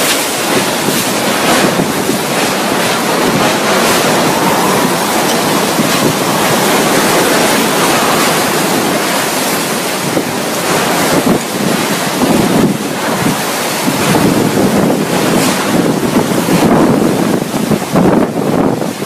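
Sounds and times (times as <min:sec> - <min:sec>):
heavy rain: 0:00.0 - 0:19.0
strong wind: 0:00.0 - 0:19.0.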